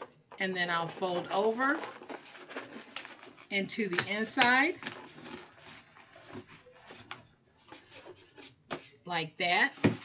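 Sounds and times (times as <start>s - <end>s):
paper rubbing and rustling: 0.8s - 3.6s, 4.7s - 9.0s.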